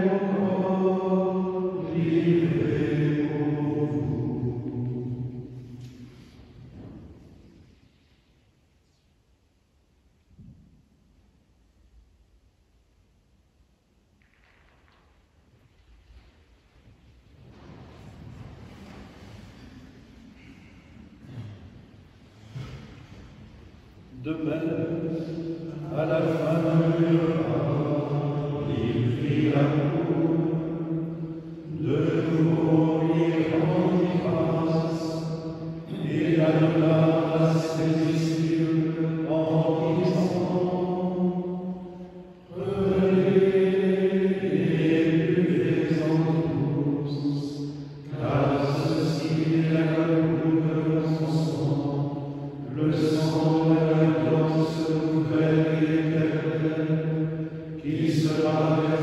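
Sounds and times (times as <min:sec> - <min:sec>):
male plainchant: 0:00.0 - 0:05.1, 0:24.1 - 0:30.4, 0:31.4 - 0:41.2, 0:42.5 - 0:43.8, 0:44.4 - 0:56.8, 0:57.5 - 0:59.0.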